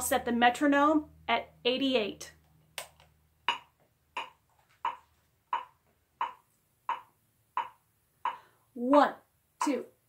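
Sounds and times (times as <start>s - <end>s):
metronome clicking: 2.8s - 8.5s.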